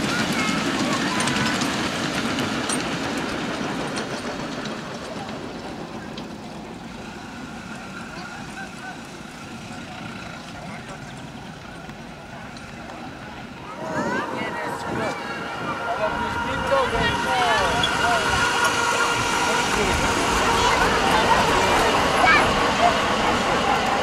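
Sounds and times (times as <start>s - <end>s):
miniature steam train running: 0.0s - 24.0s
outdoor background noise: 0.0s - 24.0s.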